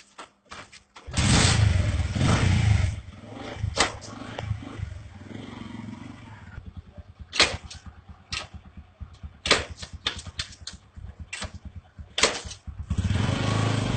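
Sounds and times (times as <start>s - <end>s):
motorcycle engine revving: 1.1s - 13.9s
engine backfire cracks: 3.6s - 4.5s, 7.2s - 13.4s.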